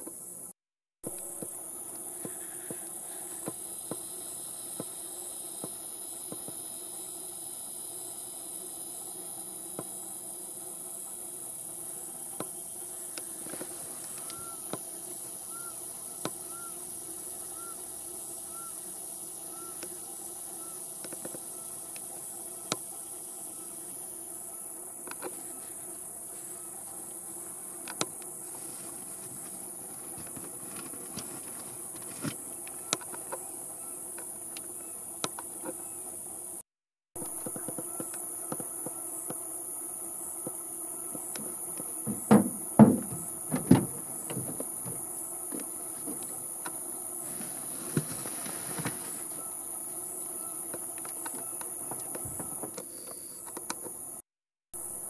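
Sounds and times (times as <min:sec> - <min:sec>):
insects chorus: 0:00.0 - 0:55.0
loud knocks: 0:42.0 - 0:45.0.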